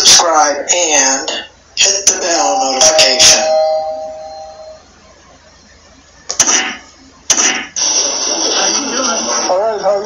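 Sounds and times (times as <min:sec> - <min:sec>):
bell ringing: 0:02.4 - 0:04.9.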